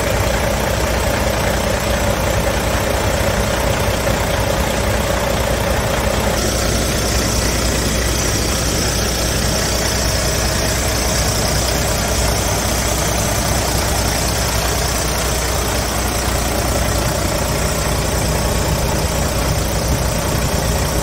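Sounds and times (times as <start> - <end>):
diesel truck engine idling: 0.0 - 21.0.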